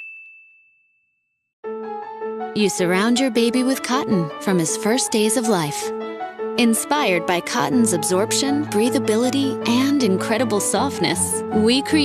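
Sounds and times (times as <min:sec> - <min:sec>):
bright chime ding: 0:00.0 - 0:01.0
soft music: 0:01.6 - 0:12.0.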